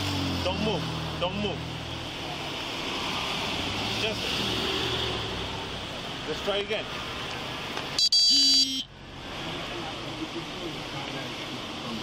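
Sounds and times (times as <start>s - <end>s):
short electronic beep: 8.0s - 8.9s.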